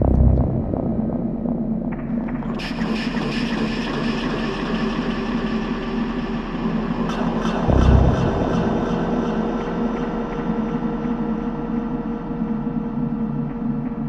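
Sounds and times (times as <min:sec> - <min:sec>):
deep boom: 0:00.0 - 0:01.6, 0:07.7 - 0:10.1
droning synth tones: 0:00.0 - 0:02.5, 0:07.5 - 0:11.2.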